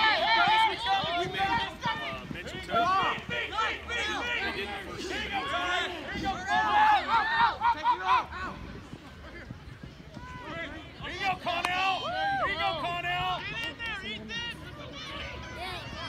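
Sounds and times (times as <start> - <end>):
people shouting and yelling: 0.0 - 16.0.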